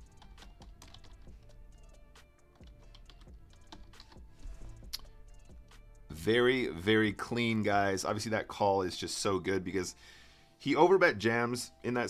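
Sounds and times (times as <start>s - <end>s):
faint background music: 0.0s - 12.0s
sharp clicks and taps: 4.8s - 5.1s.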